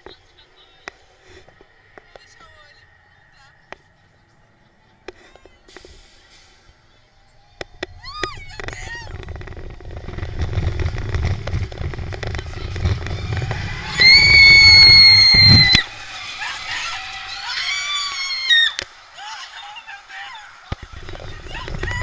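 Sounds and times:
roller coaster rumbling on track: 0:00.0 - 0:22.0
riders screaming: 0:12.7 - 0:22.0.

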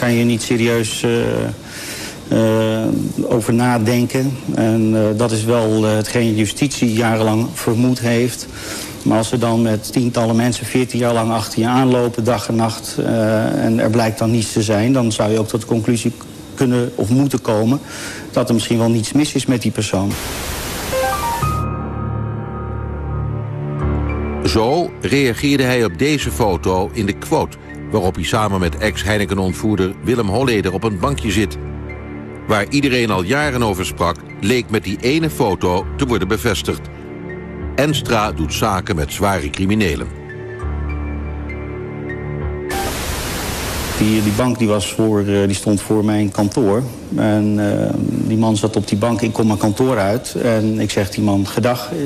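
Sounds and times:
television static hiss: 0:00.0 - 0:21.6, 0:42.7 - 0:52.0
low droning music: 0:00.0 - 0:52.0
rising electronic notes: 0:20.1 - 0:21.8, 0:42.7 - 0:44.3.

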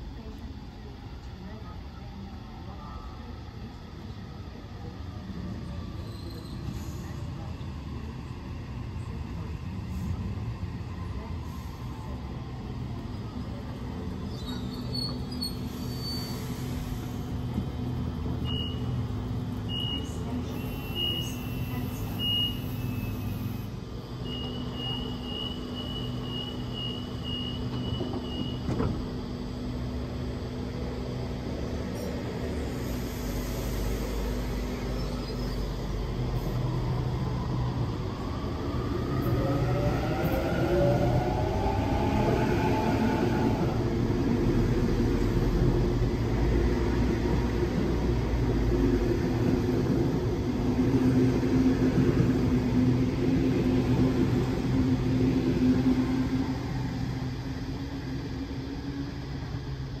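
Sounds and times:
electric train hum: 0:00.0 - 1:00.0
train carriages rolling past: 0:09.0 - 1:00.0.

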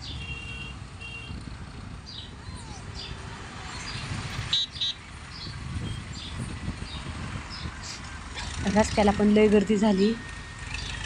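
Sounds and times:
vehicle horn toots: 0:00.0 - 0:01.4, 0:04.5 - 0:05.0
lorries and tractor driving past: 0:00.0 - 0:11.0.

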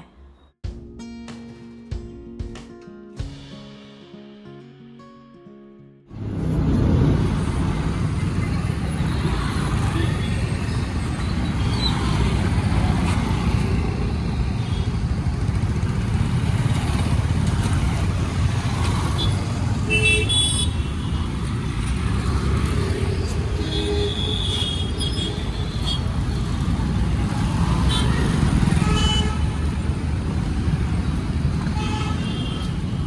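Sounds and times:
cars and motorbikes passing: 0:06.1 - 0:33.0.

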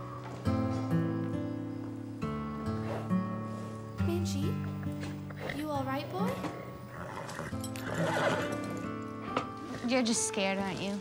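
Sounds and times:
soft background music: 0:00.0 - 0:11.0
horse whinnying: 0:06.4 - 0:08.9.

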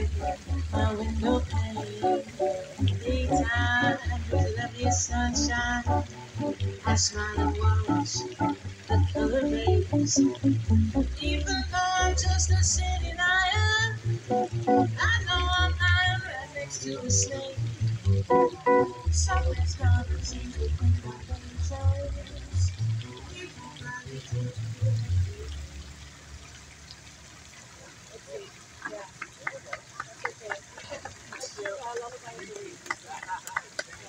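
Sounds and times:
woman singing into microphone: 0:00.0 - 0:10.4, 0:11.0 - 0:14.1, 0:14.8 - 0:17.7, 0:18.6 - 0:24.4
plucked double bass: 0:00.0 - 0:26.6.

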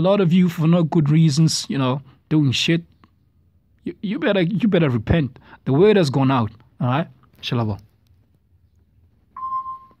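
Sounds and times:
electronic beep: 0:09.3 - 0:10.0.

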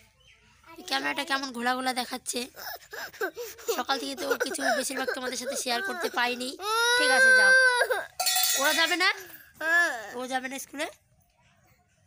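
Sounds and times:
girl crying and wailing: 0:02.4 - 0:08.2.

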